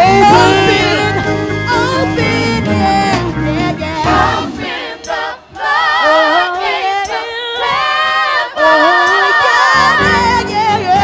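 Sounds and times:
group singing in harmony: 0.0s - 11.0s.

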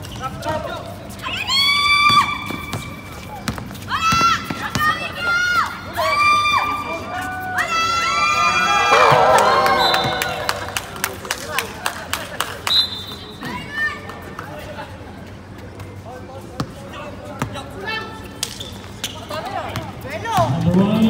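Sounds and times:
people shouting: 8.0s - 10.8s
players calling out: 8.4s - 11.2s.

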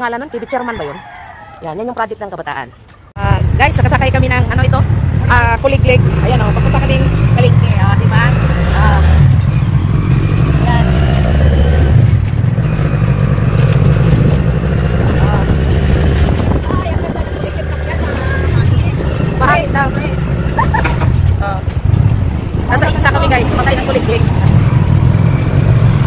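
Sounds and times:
voices: 0.0s - 11.9s, 12.6s - 25.0s
small engine droning: 4.5s - 22.3s.

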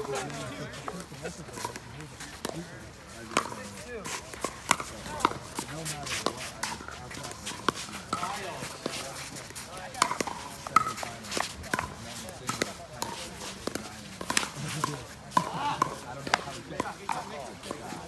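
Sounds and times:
ball bouncing on hard court: 3.3s - 3.6s, 4.3s - 5.4s, 10.0s - 14.5s.

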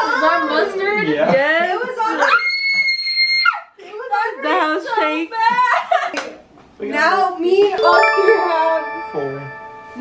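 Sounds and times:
people talking: 7.1s - 9.6s.

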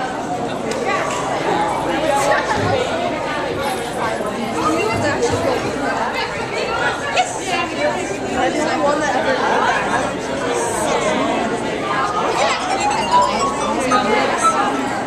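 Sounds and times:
overlapping chatter in a hall: 0.0s - 15.0s.

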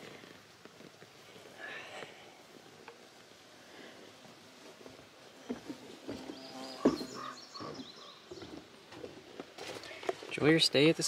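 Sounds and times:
footsteps on creaking wooden boards: 4.8s - 10.3s.

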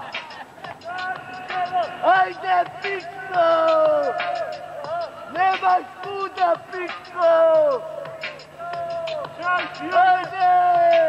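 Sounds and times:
men shouting short calls: 0.8s - 6.5s.

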